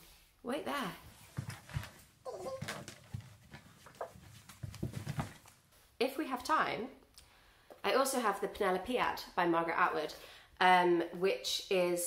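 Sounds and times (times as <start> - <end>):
woman moving and rustling: 0.7 - 6.1.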